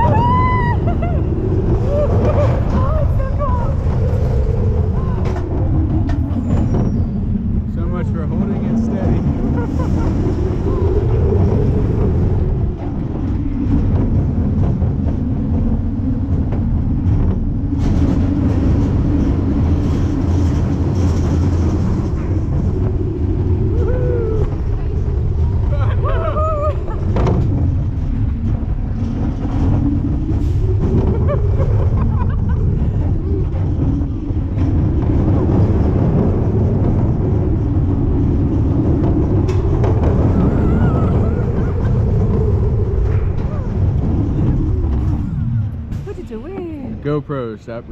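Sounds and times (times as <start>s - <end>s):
rushing air: 0.0s - 46.4s
roller coaster rumbling on track: 0.0s - 47.9s.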